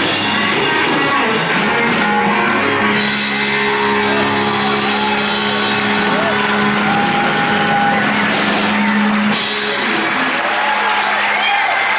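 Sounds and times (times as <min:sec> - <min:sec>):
rock band chord ringing out: 0:00.0 - 0:10.5
audience cheering and whooping: 0:01.8 - 0:11.9.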